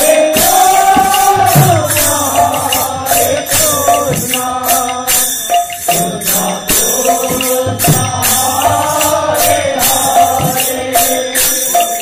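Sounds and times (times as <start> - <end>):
barrel drum rhythm: 0.0 - 12.0.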